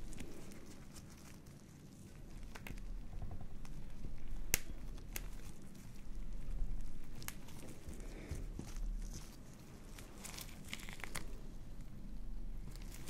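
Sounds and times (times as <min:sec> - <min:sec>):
tissue rubbing and crinkling: 0:00.0 - 0:02.9, 0:03.6 - 0:13.0
low rumble: 0:02.3 - 0:13.0.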